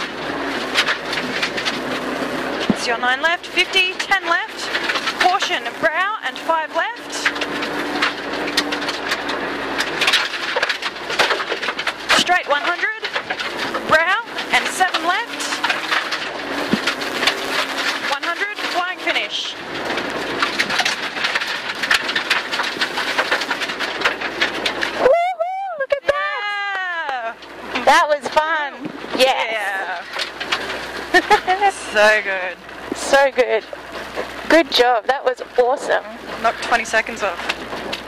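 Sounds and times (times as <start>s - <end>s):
car engine revving: 0.0s - 25.1s, 27.1s - 38.0s
gravel hitting underbody: 7.2s - 25.2s.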